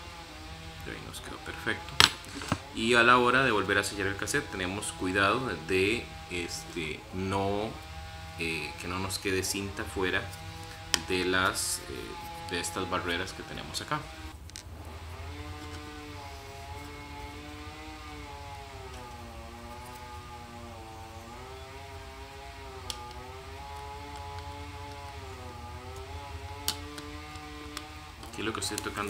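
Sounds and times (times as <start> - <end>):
droning tone: 0.0 - 29.0
low hum: 0.0 - 29.0
plastic cassette shell clicks: 22.8 - 25.2, 26.4 - 28.9.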